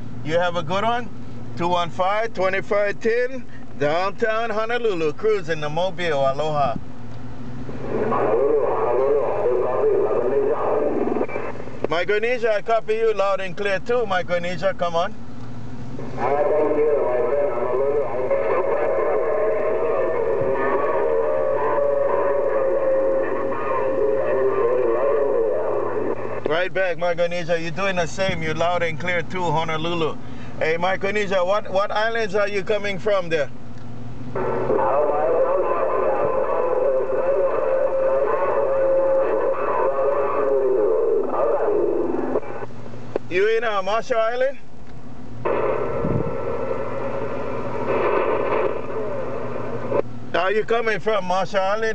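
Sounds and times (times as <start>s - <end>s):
hissy radio voice: 7.8s - 15.1s, 16.1s - 33.5s, 34.4s - 42.7s
steady tone: 45.2s - 51.8s.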